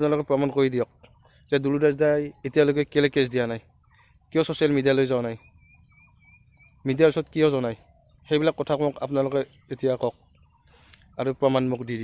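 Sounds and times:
man talking: 0:00.0 - 0:03.7, 0:04.3 - 0:05.4, 0:06.8 - 0:10.2, 0:11.0 - 0:12.0.

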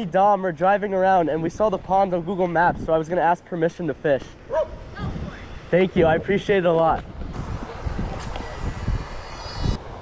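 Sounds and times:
wind rumble on microphone: 0:01.5 - 0:03.0, 0:04.6 - 0:10.0.

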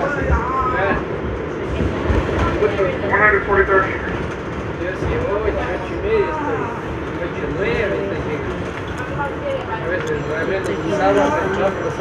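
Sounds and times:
subway train passing at speed: 0:00.0 - 0:12.0.

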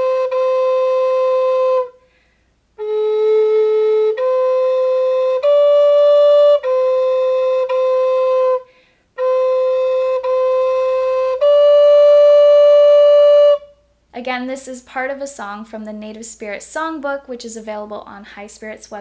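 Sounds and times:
wooden flute slow held notes: 0:00.0 - 0:02.1, 0:02.8 - 0:13.9
player breath: 0:02.0 - 0:02.6, 0:08.7 - 0:09.1.

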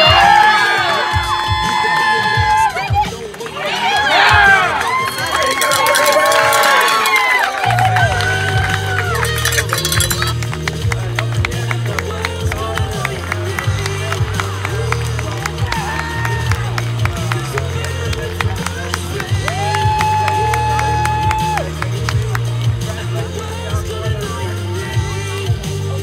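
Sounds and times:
pop song with thumping bass: 0:00.0 - 0:03.6, 0:04.2 - 0:26.0
crowd cheering and shouting: 0:00.0 - 0:26.0.

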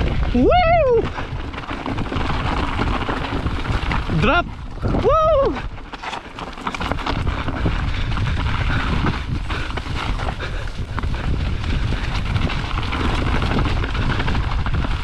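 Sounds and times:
bike clicking and rattling: 0:00.0 - 0:15.0
tyre rumble and wind noise: 0:00.0 - 0:15.0.

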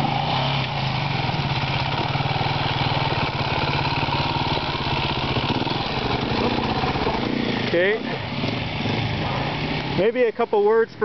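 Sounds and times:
motorcycle engine at low revs: 0:00.0 - 0:10.5.

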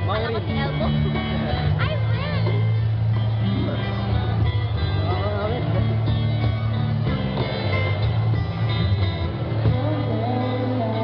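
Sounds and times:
acoustic guitars playing: 0:00.0 - 0:11.0
person singing: 0:09.6 - 0:11.0.

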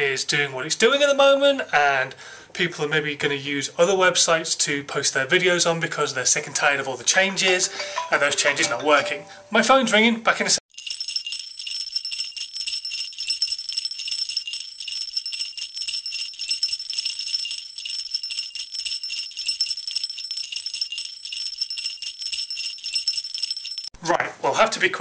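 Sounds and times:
sleigh bells jingling: 0:10.7 - 0:24.0.

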